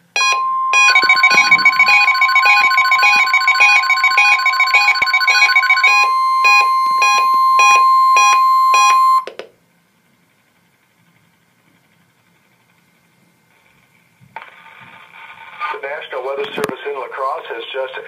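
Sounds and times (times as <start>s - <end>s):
steady warning alarm tone: 0.0s - 9.2s
electronic alarm beeps: 0.2s - 9.3s.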